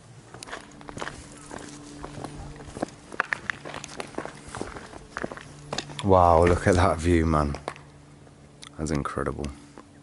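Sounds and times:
footsteps on gravel: 0:00.2 - 0:07.9.

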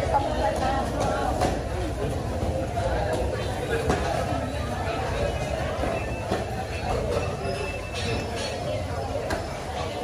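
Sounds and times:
vendors and shoppers talking: 0:00.0 - 0:10.0.

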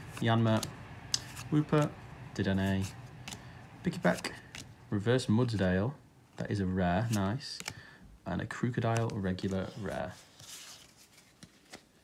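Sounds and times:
cards rustling: 0:00.0 - 0:05.7, 0:06.3 - 0:12.0
cards light ticks: 0:00.4 - 0:01.9, 0:02.8 - 0:03.5.

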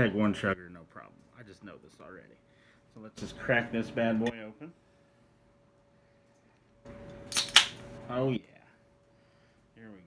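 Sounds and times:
can cracking open: 0:07.3 - 0:07.8.

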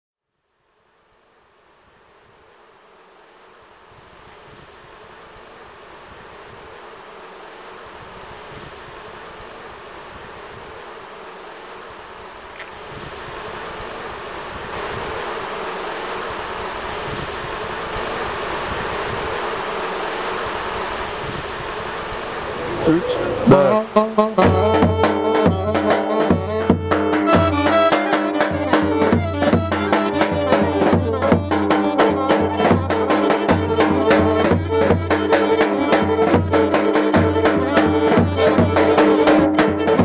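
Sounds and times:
bees buzzing: 0:10.7 - 0:40.0.

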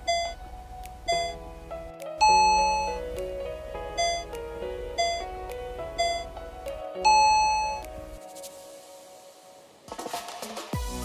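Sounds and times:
timer bell dings: 0:00.0 - 0:00.4, 0:01.1 - 0:01.4, 0:02.2 - 0:03.0, 0:04.0 - 0:04.3, 0:05.0 - 0:05.2, 0:06.0 - 0:06.3, 0:07.0 - 0:07.8
background music: 0:00.0 - 0:11.0.

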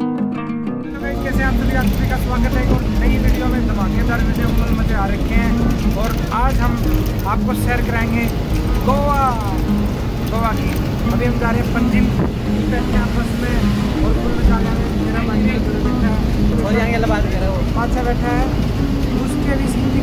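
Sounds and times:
bus engine and road rumble: 0:00.8 - 0:20.0
man talking: 0:00.9 - 0:20.0.

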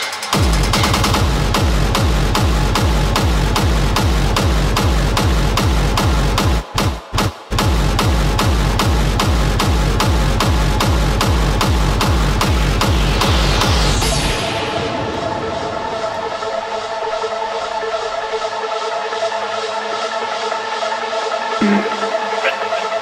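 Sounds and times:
hard techno music: 0:00.0 - 0:23.0.

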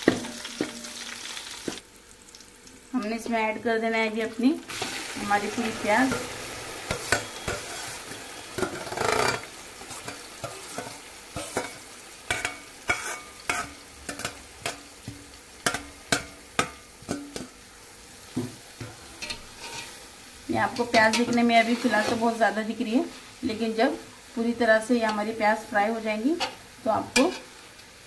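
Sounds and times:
onions sizzling in hot oil: 0:00.0 - 0:28.0
metal spatula scraping pot: 0:05.5 - 0:14.8, 0:19.1 - 0:20.0, 0:20.8 - 0:22.4.

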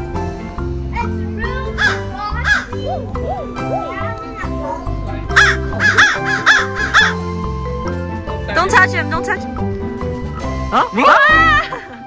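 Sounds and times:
background music: 0:00.0 - 0:12.0
crow cawing harshly: 0:01.8 - 0:02.8, 0:05.3 - 0:07.2.

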